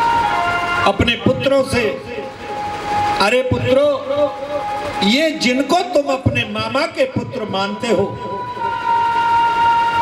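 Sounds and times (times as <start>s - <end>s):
high-pitched held tone: 0.0s - 10.0s.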